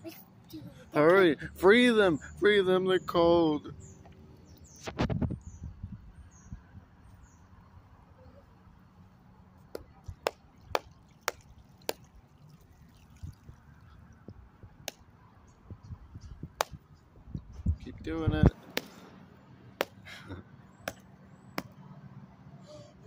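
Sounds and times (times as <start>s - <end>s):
water pouring onto ice: 10.9s - 14.0s.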